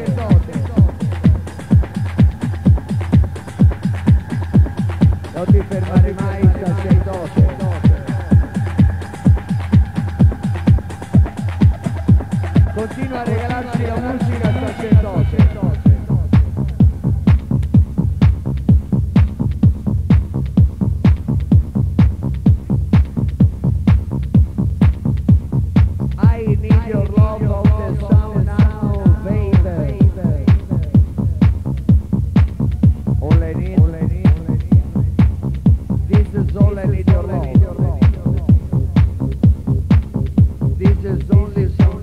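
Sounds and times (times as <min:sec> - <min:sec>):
electronic dance music: 0:00.0 - 0:42.0
hi-hats: 0:00.0 - 0:42.0
kick drum beat: 0:00.0 - 0:42.0.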